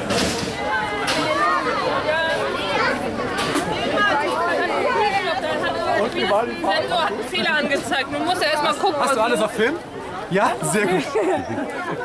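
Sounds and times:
overlapping chatter of voices: 0:00.0 - 0:12.0.

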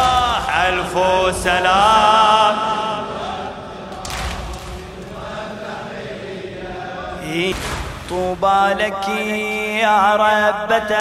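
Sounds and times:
crowd of men chanting: 0:00.0 - 0:11.0.

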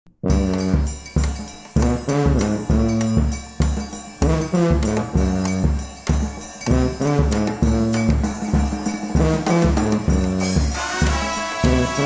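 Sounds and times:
brass band playing: 0:00.2 - 0:01.2, 0:01.8 - 0:03.4, 0:04.2 - 0:05.9, 0:06.7 - 0:08.5, 0:09.1 - 0:12.0.

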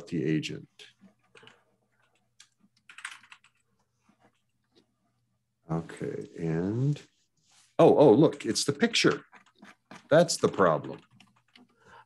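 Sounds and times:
computer keyboard typing: 0:01.1 - 0:03.7, 0:09.0 - 0:12.0.

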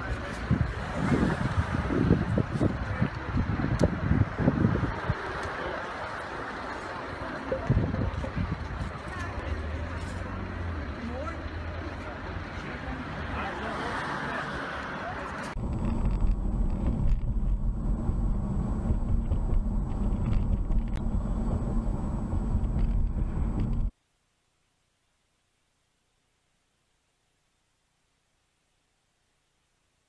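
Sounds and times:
people's voices: 0:00.0 - 0:15.6
car road noise rumble: 0:00.0 - 0:24.0
street noise: 0:00.0 - 0:24.0.

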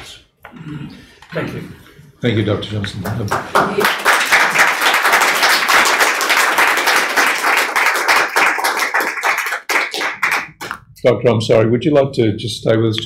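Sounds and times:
audience applauding: 0:03.0 - 0:10.8.

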